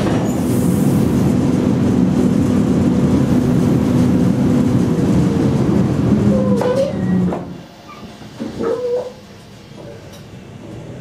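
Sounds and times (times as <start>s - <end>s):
train running hum: 0.0s - 11.0s
train brakes squealing: 6.3s - 9.2s.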